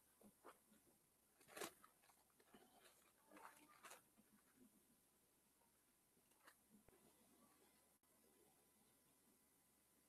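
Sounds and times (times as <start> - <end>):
pages being turned: 1.4 - 4.1.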